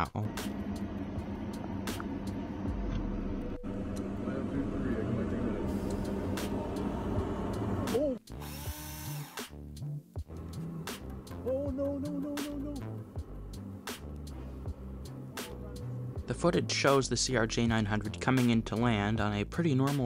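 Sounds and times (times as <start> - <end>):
vehicle cabin rumbling: 0.3 - 7.9.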